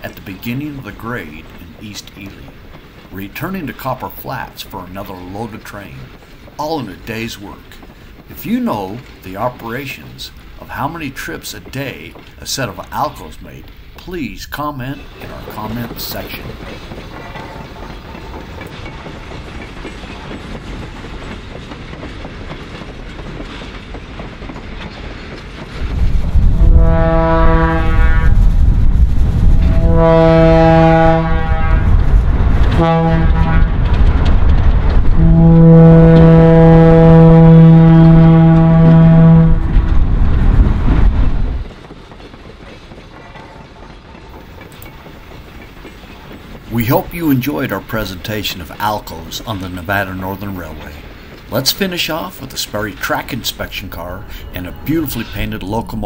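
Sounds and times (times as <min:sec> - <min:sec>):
freight train rumbling past: 0:00.0 - 0:56.0
locomotive horn blowing: 0:26.5 - 0:28.4, 0:29.6 - 0:32.0, 0:32.7 - 0:34.0, 0:35.2 - 0:39.9.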